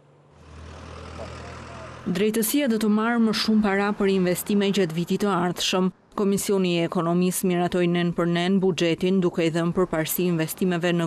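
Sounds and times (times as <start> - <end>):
low vehicle engine rumble: 0.0 - 5.5.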